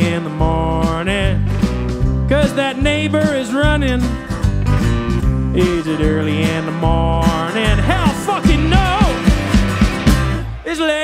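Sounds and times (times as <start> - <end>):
lead guitar bending pitch: 0.0 - 10.6
live rock band playing: 0.0 - 11.0.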